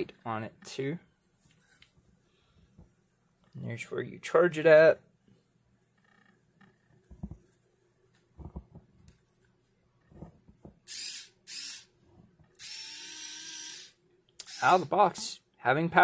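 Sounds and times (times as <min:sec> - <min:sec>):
electric screwdriver motor whirring: 0:10.9 - 0:11.9, 0:12.6 - 0:14.9.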